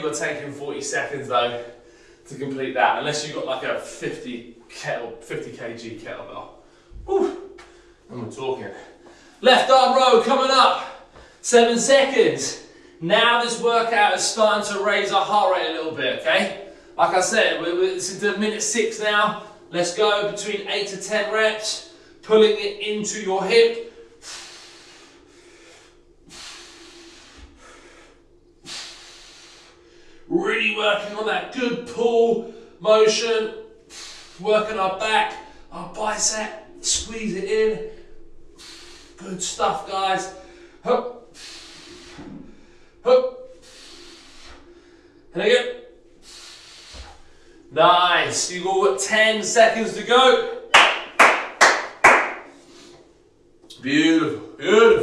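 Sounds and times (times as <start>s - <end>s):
man breathing hard: 1.7s - 2.3s, 6.6s - 8.1s, 8.8s - 9.4s, 11.0s - 11.4s, 23.8s - 30.3s, 33.8s - 34.4s, 37.8s - 39.2s, 40.2s - 45.3s, 46.0s - 47.7s, 52.5s - 53.3s
man clapping hands: 50.8s - 52.5s.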